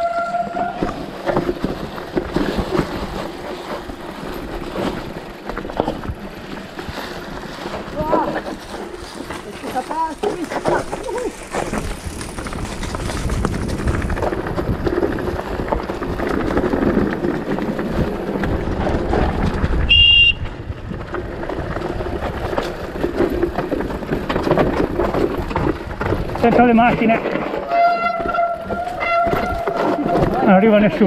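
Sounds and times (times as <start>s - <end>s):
bike rumbling and rattling: 0.0s - 31.0s
wind noise on microphone: 10.6s - 31.0s.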